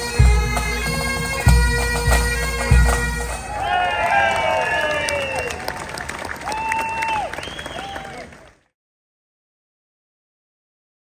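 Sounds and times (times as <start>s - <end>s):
crowd clapping: 3.4s - 8.7s
whistle-like tones: 3.5s - 5.7s, 6.6s - 8.1s.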